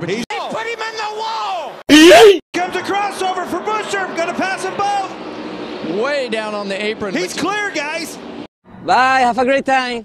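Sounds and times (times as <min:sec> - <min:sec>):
race cars droning: 0:02.6 - 0:08.5
man talking: 0:05.9 - 0:08.2.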